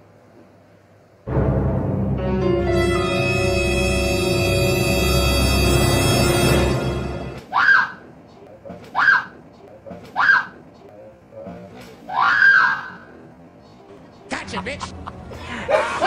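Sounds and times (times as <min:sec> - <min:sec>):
tense background music: 0:01.3 - 0:07.5
woman screaming: 0:12.1 - 0:13.0.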